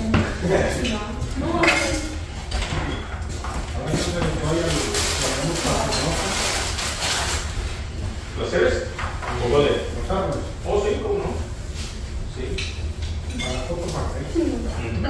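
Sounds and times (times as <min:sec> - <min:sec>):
people chatting: 0:00.0 - 0:02.2, 0:03.7 - 0:06.6, 0:08.4 - 0:11.5, 0:13.3 - 0:15.0
dishes and cutlery clinking: 0:00.1 - 0:06.6, 0:12.5 - 0:15.0.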